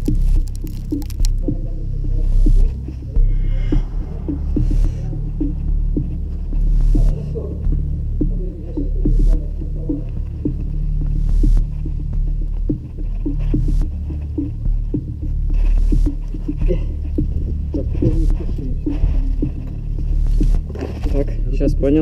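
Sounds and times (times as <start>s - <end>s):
steady low hum: 0.0s - 22.0s
person breathing hard: 2.9s - 5.9s.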